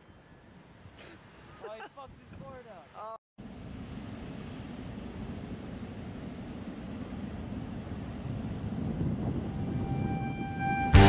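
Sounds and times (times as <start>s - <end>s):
wind on microphone: 2.0s - 2.6s, 4.7s - 11.0s.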